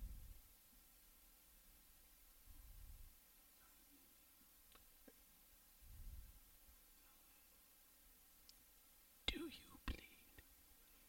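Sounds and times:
faint click: 0:04.7 - 0:05.2, 0:08.4 - 0:08.6
person whispering: 0:09.3 - 0:10.5.

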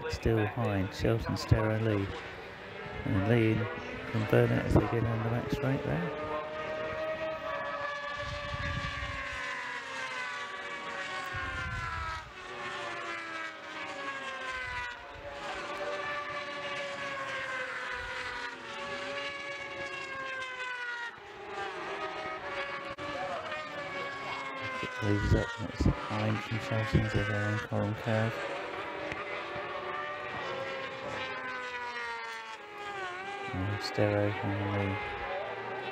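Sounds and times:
racing motorcycles passing: 0:00.0 - 0:35.9.

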